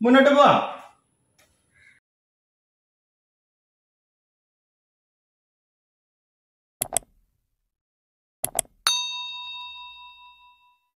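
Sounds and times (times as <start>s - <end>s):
notification bell ding: 8.9s - 11.0s.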